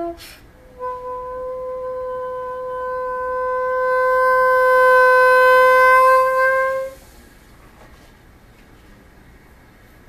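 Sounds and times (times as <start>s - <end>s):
bassoon long note: 0.0s - 7.1s.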